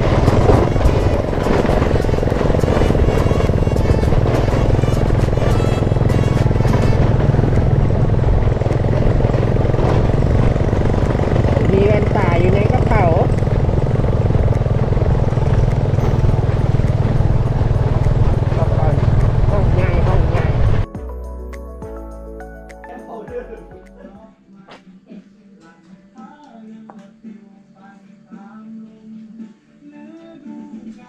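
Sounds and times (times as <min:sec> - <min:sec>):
motorcycle engine running: 0:00.0 - 0:20.8
wind rumble on microphone: 0:00.0 - 0:20.8.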